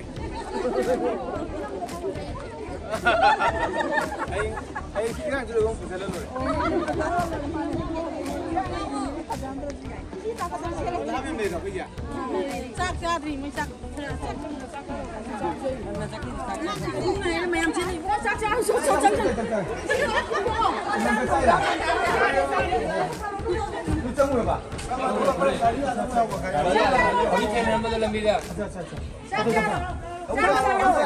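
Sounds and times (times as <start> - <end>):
group of people chattering: 0.0 - 31.0.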